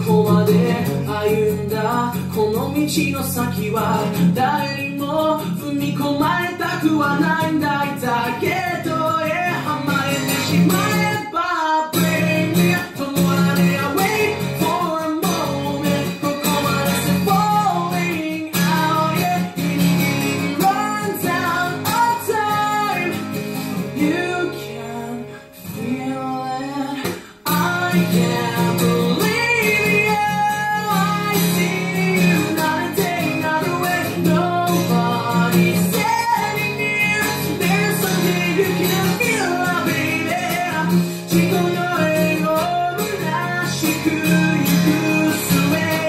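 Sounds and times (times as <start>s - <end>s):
acoustic guitar strumming: 0.0s - 46.0s
man singing: 0.0s - 46.0s.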